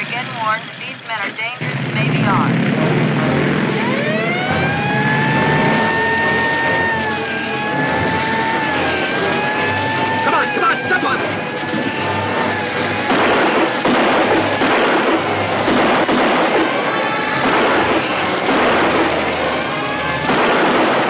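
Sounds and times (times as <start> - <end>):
motorcycle engine running: 0.0 - 20.4
police siren wailing: 0.0 - 21.0.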